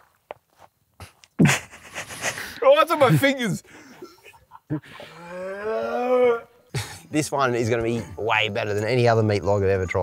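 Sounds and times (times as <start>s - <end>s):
man groaning in disgust: 5.1s - 6.5s.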